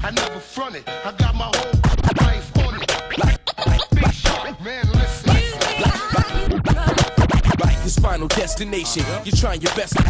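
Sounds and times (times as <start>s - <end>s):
hip hop music: 0.0s - 10.0s
record scratching: 1.5s - 10.0s.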